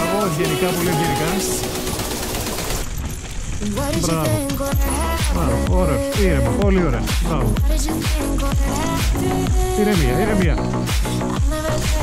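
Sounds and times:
background pop music: 0.0s - 2.8s, 3.7s - 12.0s
mountain bike rattling on rocks: 0.2s - 5.4s.

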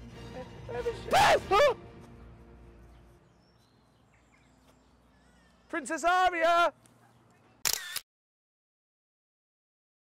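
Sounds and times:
faint background music: 0.0s - 4.0s.

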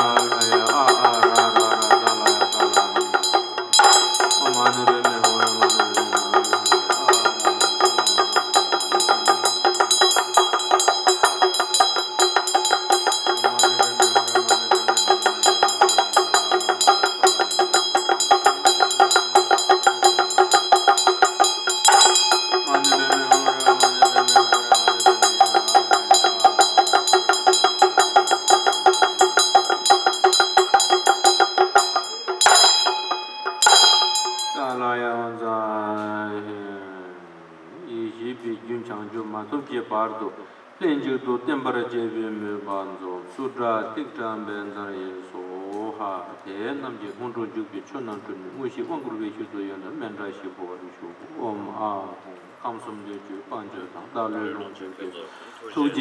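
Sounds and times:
hand drum rattling rapidly: 0.0s - 34.8s
bell ringing steadily: 0.0s - 34.9s, 55.3s - 56.0s.

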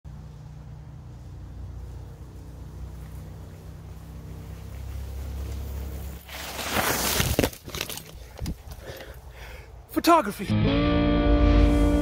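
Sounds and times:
bike tyres crunching through leaves: 0.1s - 9.2s.

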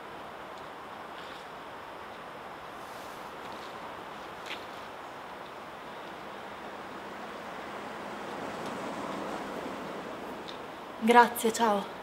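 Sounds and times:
steady rushing noise: 0.0s - 11.4s.

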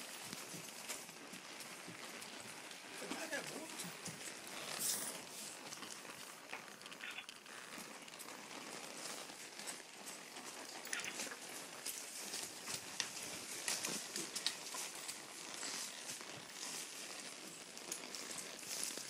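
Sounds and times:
horse hooves on dirt and rock: 0.0s - 19.0s.

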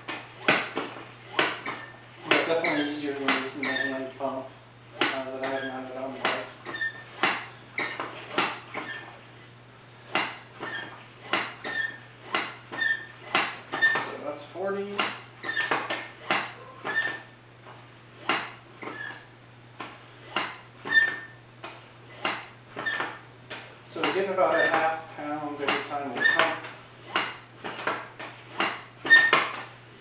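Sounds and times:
foot pump frame clacking: 0.0s - 9.3s, 10.0s - 29.8s.

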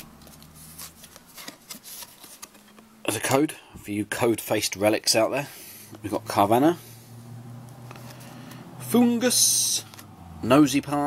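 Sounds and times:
trading cards rustling: 0.0s - 2.9s, 7.7s - 10.1s.

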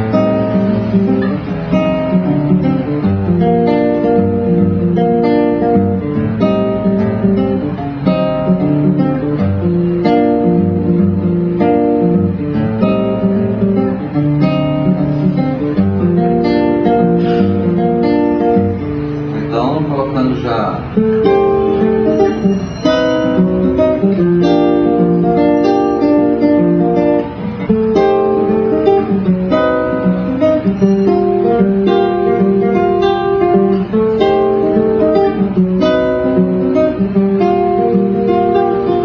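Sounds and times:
solo guitar playing: 0.0s - 39.0s.

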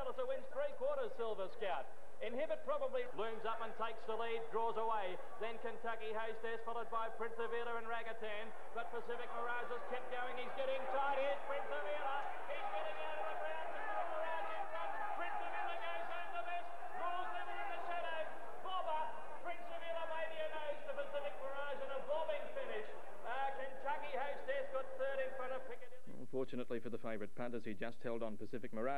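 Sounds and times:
man giving race commentary: 0.0s - 28.9s.

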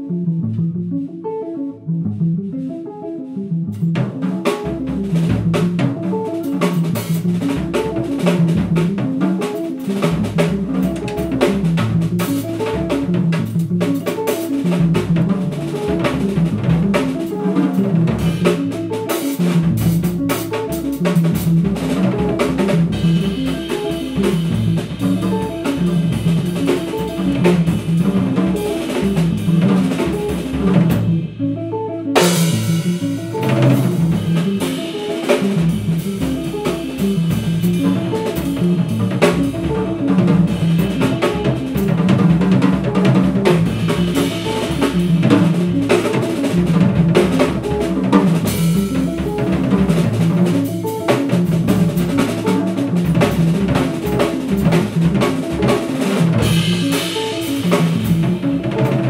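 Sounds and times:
jazz band playing: 0.0s - 59.0s
upright bass notes: 0.0s - 59.0s.

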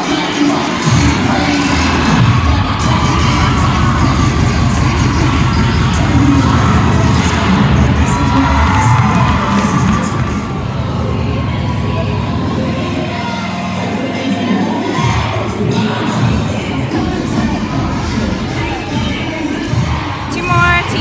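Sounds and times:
cheer music over speakers: 0.0s - 21.0s
crowd cheering and shouting: 0.0s - 21.0s.

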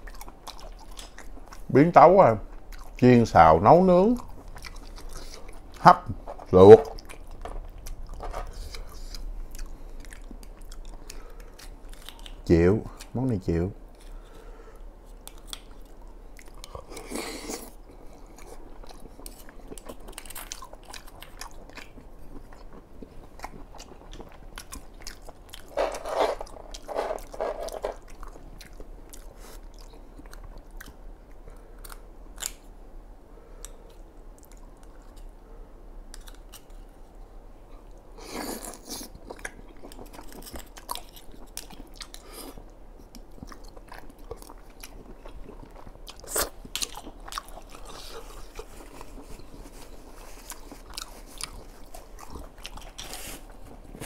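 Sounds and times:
close-miked chewing: 0.0s - 1.7s, 2.4s - 13.2s, 13.9s - 32.6s, 36.1s - 54.0s.

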